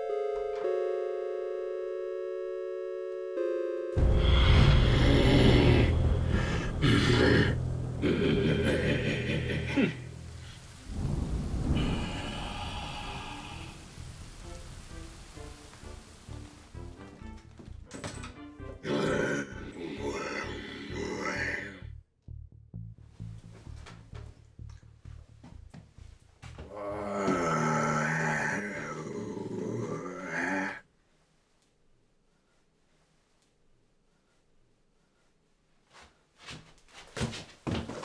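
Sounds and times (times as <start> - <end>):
low demonic vocal growl: 4.0 - 10.1, 10.9 - 13.9, 18.8 - 21.9, 26.7 - 30.8
thunder rumbling: 4.0 - 17.1
rain hiss: 4.0 - 17.4
soft music notes: 21.9 - 26.5.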